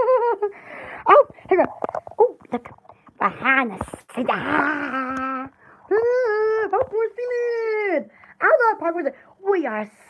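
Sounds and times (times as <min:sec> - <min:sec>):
woman making wordless vocal sounds: 0:00.9 - 0:09.0.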